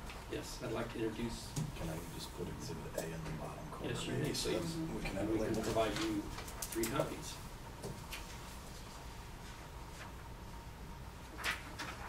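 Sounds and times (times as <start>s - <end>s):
paper rustling: 5.5s - 7.1s, 11.3s - 12.0s.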